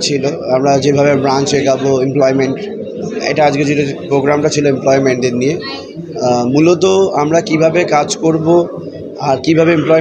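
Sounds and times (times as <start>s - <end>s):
man speaking into microphones: 0.0s - 10.0s.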